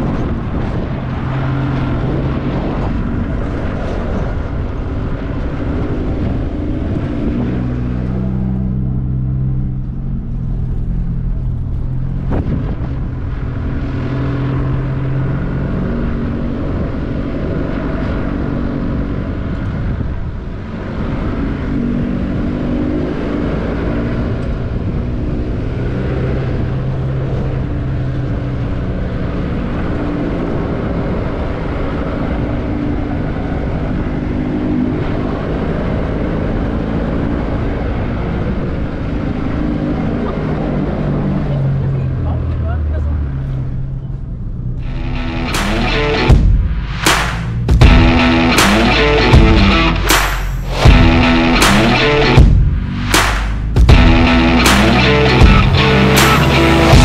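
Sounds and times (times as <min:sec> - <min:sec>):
tyre and wind rumble: 0:00.0 - 0:42.5, 0:43.6 - 0:57.0
vehicle engine revving: 0:00.0 - 0:57.0.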